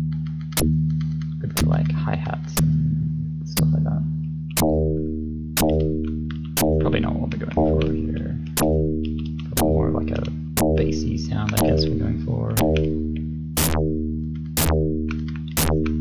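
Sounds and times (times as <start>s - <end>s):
synth playing low note: 0.0s - 16.0s.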